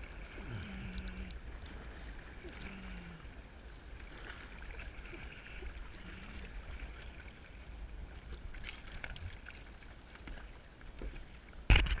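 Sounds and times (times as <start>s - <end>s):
water lapping against kayak hull: 0.0s - 12.0s.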